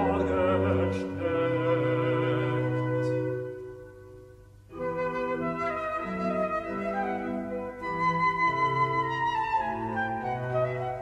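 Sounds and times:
flute melody: 0.0 - 11.0.

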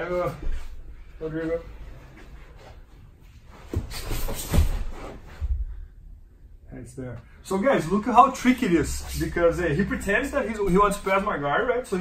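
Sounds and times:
bodies thumping on foam mat: 3.6 - 5.6.

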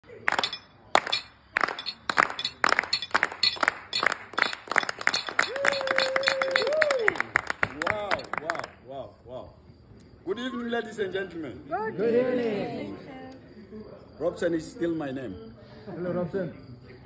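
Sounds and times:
group clapping hands: 0.0 - 8.8.

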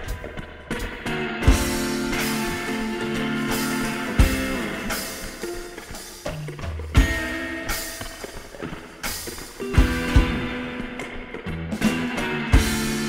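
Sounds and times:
sustained guitar chords: 0.0 - 13.0.

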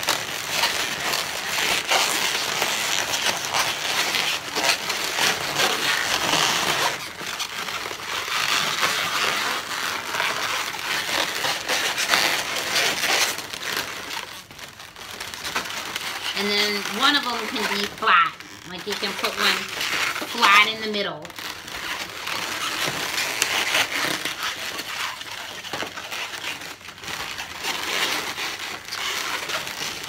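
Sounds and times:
balloons rubbing and squeaking: 0.0 - 30.0.

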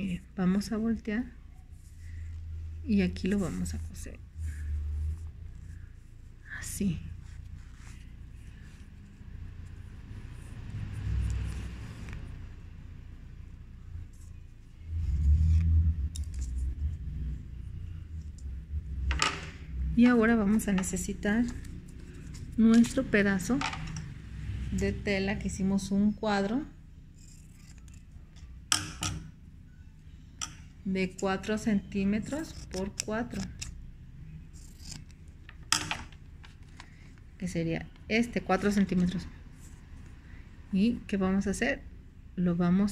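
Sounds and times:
fabric rustling while hand-sewing: 4.8 - 10.4
fabric and paper rustle: 6.9 - 9.3, 20.6 - 23.5
low rumble: 12.9 - 27.0.

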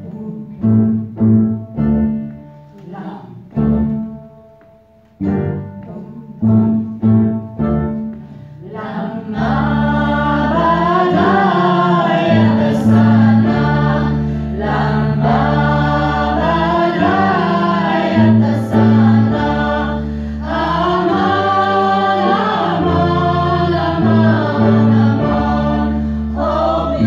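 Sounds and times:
small band playing: 0.7 - 27.0
women singing together: 8.6 - 27.0.

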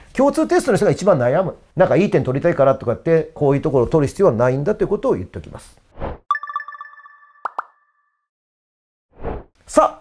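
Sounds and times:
bell-like chime jingle: 6.3 - 8.3.

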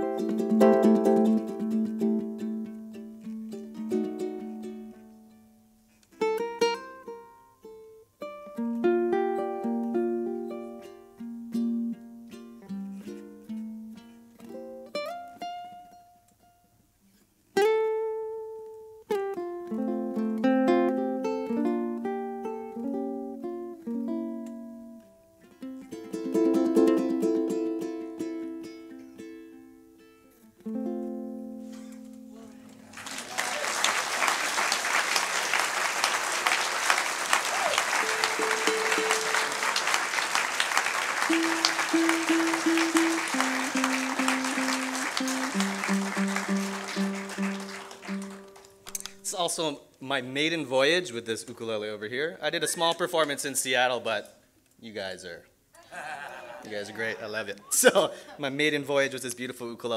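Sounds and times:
ukulele fingerstyle playing: 0.0 - 32.9, 37.5 - 49.3
audience applause: 32.6 - 48.7.

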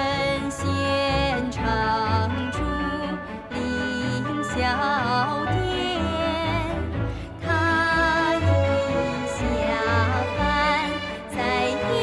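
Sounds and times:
instrumental accompaniment: 0.0 - 12.0
person singing: 0.0 - 12.0.

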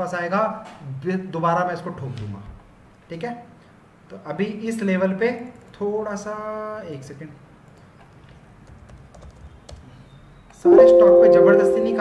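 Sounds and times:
computer keyboard typing: 8.6 - 9.8.

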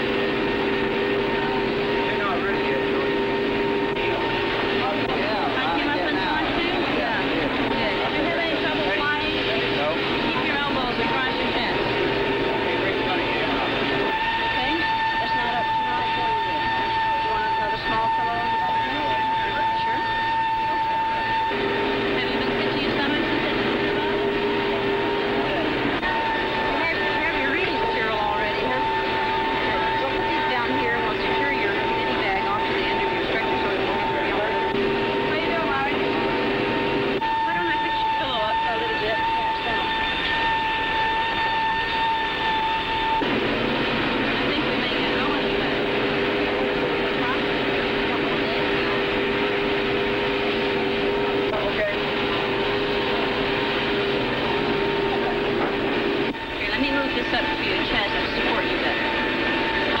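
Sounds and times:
aircraft engines whining: 0.0 - 60.0
indistinct voices: 0.0 - 60.0.

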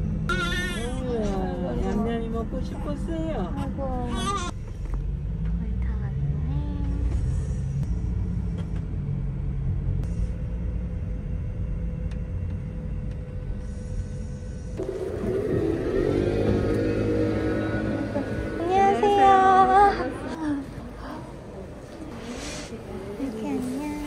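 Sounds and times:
road rumble inside van: 0.0 - 24.0.

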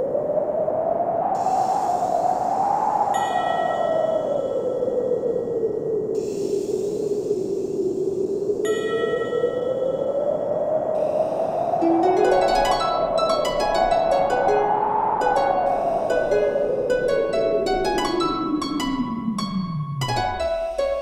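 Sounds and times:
whooshing ambient pad: 6.2 - 21.0.

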